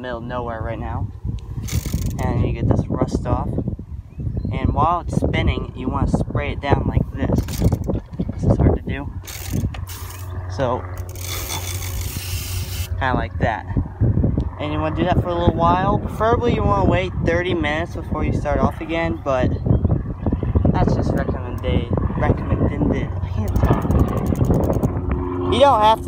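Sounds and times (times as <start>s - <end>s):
low wind rumble on microphone: 0.0s - 26.0s
bicycle freewheel ratchet ticking: 1.6s - 2.2s, 9.2s - 10.3s, 11.0s - 12.9s, 23.4s - 24.9s.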